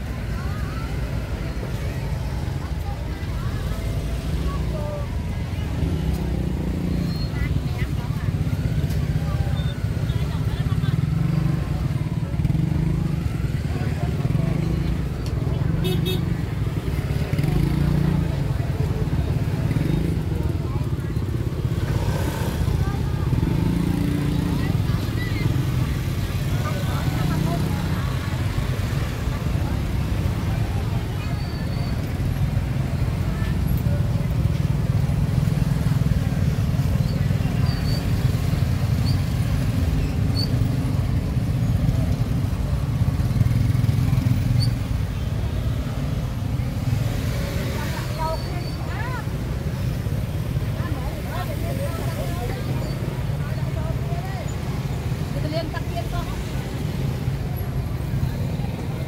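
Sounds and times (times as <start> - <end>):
indistinct chatter of people: 0.0 - 59.0
motorbike traffic rumble: 0.0 - 59.0.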